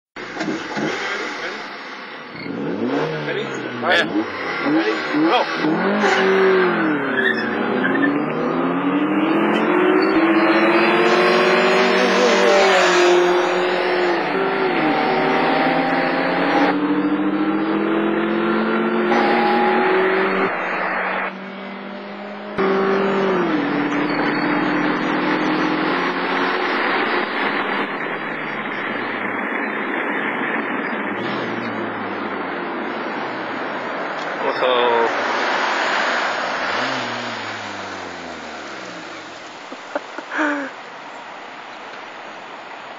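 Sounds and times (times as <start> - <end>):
car engine accelerating: 0.2 - 39.8.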